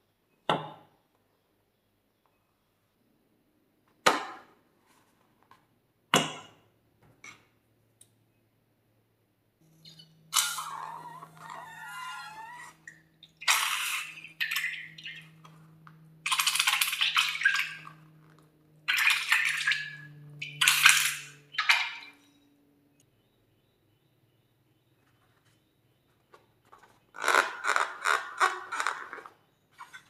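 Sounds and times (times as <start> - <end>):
squeak of air through balloon: 9.8 - 14.4
wet squelching slime: 10.4 - 22.2.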